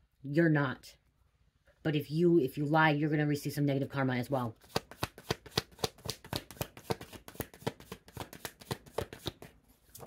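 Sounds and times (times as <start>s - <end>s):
cards being shuffled: 4.6s - 10.0s.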